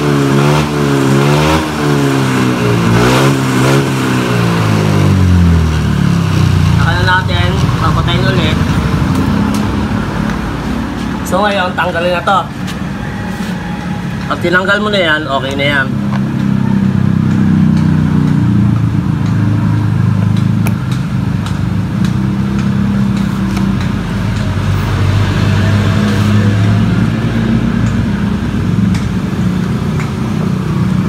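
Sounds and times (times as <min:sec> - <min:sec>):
scooter engine idling: 0:04.4 - 0:25.1.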